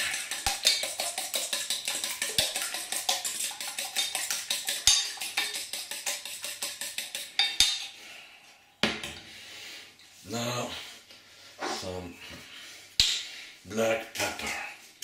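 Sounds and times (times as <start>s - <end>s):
eggs beaten in metal bowl: 0.0s - 8.0s.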